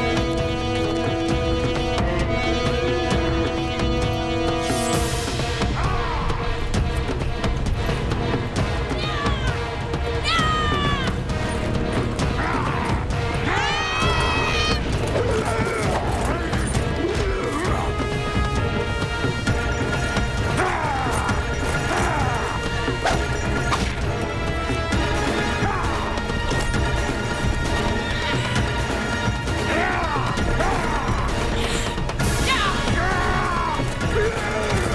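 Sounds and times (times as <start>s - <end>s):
background music: 0.0s - 34.9s
galloping hooves: 6.7s - 34.9s
woman yelling: 9.0s - 11.2s, 13.5s - 14.8s, 32.4s - 33.7s.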